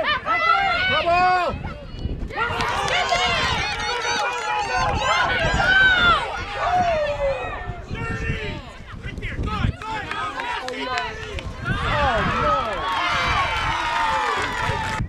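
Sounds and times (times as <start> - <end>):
spectators cheering and yelling: 0.0 - 15.0.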